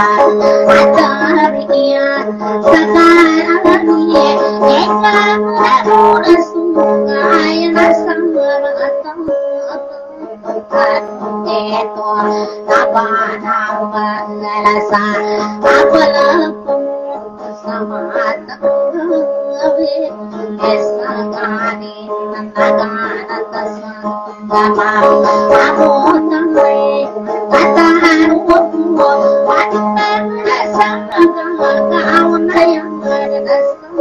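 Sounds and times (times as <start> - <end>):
plucked guitar: 0.0 - 34.0
singing with instrumental accompaniment: 0.0 - 34.0.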